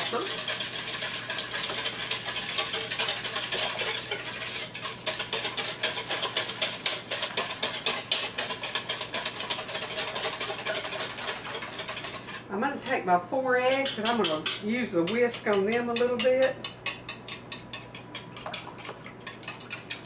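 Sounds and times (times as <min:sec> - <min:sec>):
wire whisk beating in a bowl: 0:00.0 - 0:12.4, 0:13.6 - 0:20.0.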